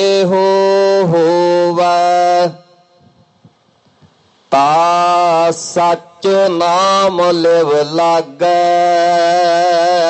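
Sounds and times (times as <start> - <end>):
person chanting: 0.0 - 2.9, 4.5 - 10.0.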